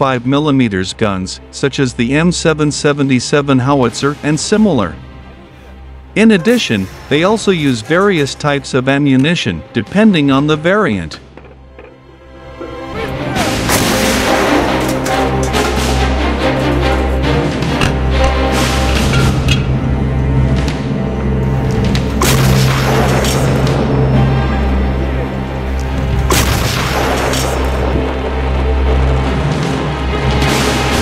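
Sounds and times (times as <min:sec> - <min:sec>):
background music: 0:00.0 - 0:31.0.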